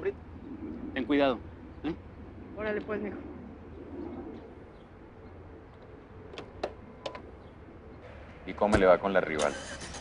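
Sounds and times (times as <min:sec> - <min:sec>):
bird cooing softly: 0:00.0 - 0:05.7.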